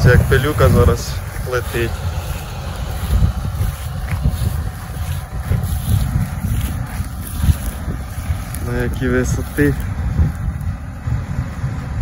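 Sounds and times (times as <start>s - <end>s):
tractor running: 0.0s - 12.0s
wind buffeting microphone: 0.0s - 12.0s.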